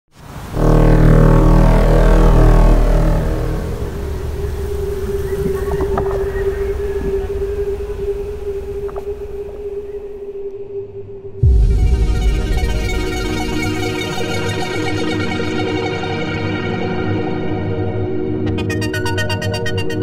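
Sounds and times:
falling synth sweep: 0:00.2 - 0:10.4, 0:11.4 - 0:20.0
low synthesizer chord: 0:00.2 - 0:20.0
sustained synth tone: 0:00.2 - 0:20.0.

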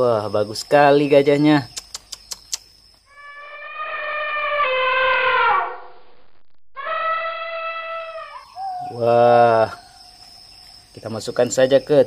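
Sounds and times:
elephant trumpeting: 0:03.1 - 0:05.9, 0:06.8 - 0:08.4.

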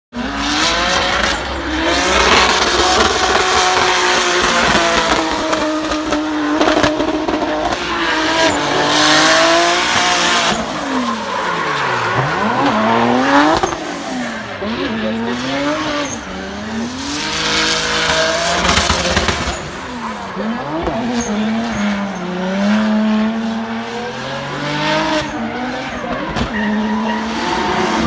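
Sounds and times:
car engine at high revs: 0:00.1 - 0:28.0
tyre squeal: 0:25.3 - 0:28.0.

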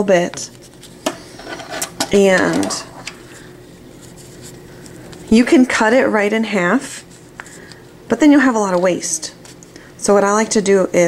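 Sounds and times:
fan heater humming: 0:00.0 - 0:11.0.

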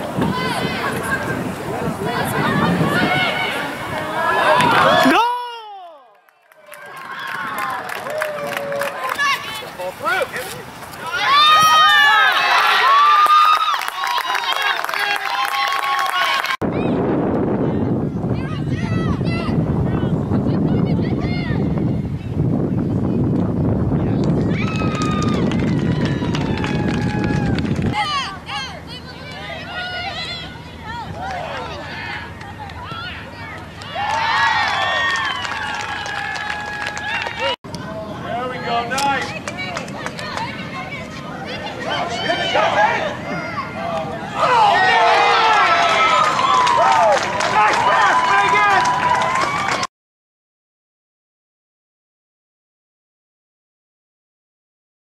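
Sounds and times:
wind buffeting microphone: 0:00.0 - 0:05.2, 0:16.6 - 0:29.4.

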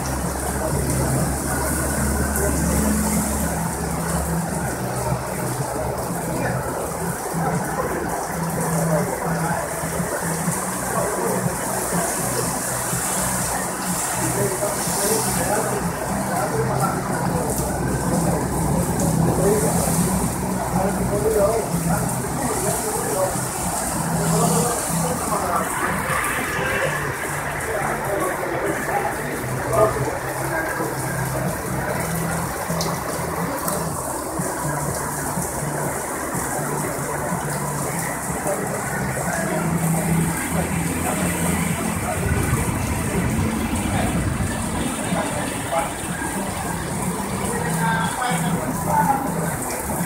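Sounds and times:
heavy rain on pavement: 0:00.0 - 0:50.0.

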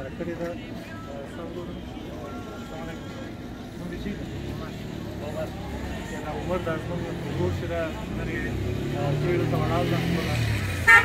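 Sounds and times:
traffic rumble: 0:00.0 - 0:11.0
voices talking: 0:00.0 - 0:11.0.

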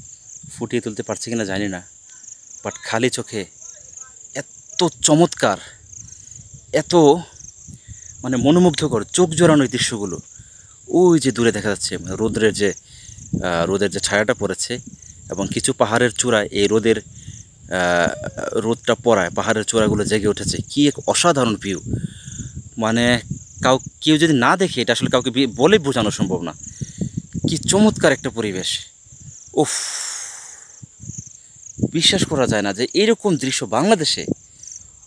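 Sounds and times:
insects buzzing: 0:00.0 - 0:35.0
man speaking: 0:00.5 - 0:01.9, 0:02.6 - 0:05.8, 0:06.6 - 0:07.4, 0:08.2 - 0:10.3, 0:10.9 - 0:12.8, 0:13.4 - 0:17.1, 0:17.7 - 0:21.9, 0:22.8 - 0:26.6, 0:27.4 - 0:28.9, 0:31.9 - 0:34.4.

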